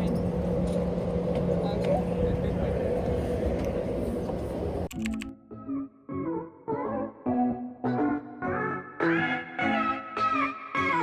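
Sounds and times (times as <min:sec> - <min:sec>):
traffic rumble: 0:00.0 - 0:04.9.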